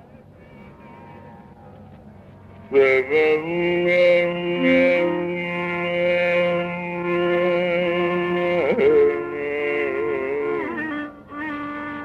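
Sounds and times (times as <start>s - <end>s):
deep male voice singing: 2.8s - 7.4s.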